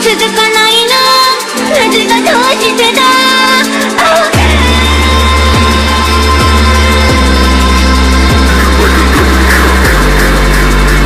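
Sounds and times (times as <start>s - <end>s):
dubstep electronic music: 0.0s - 11.0s
heavy bass line: 1.8s - 11.0s.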